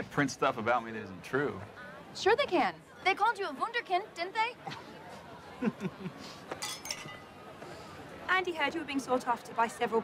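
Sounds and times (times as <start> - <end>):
glasses clinking: 6.6 - 7.3.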